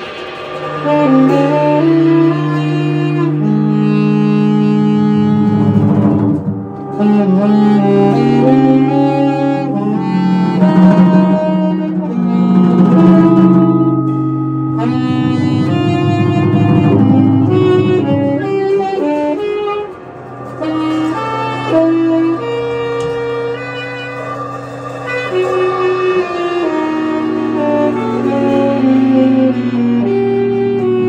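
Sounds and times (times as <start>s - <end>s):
tenor saxophone long notes: 0.6s - 31.0s
sustained background tones: 13.0s - 30.9s.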